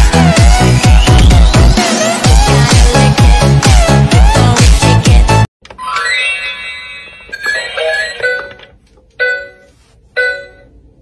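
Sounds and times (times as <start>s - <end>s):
electronic toy chimes: 5.8s - 10.7s.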